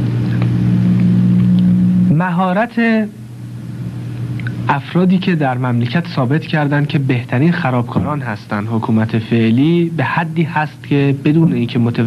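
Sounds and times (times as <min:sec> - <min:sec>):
low electrical hum with hiss: 0:00.0 - 0:12.0.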